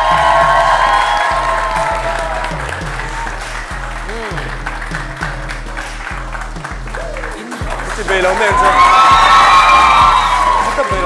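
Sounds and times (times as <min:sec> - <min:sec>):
audience applauding: 0:00.0 - 0:11.0
music with repeating bass line: 0:00.0 - 0:11.0.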